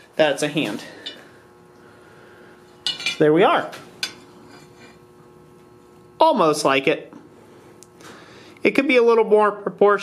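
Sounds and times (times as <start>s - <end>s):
faint steady hum: 0.0s - 10.0s
metal clink on anvil: 2.8s - 3.2s.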